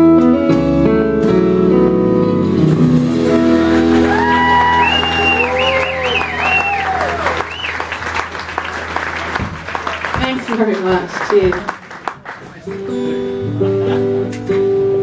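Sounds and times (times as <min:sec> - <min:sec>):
audience clapping and cheering: 0:03.5 - 0:13.1.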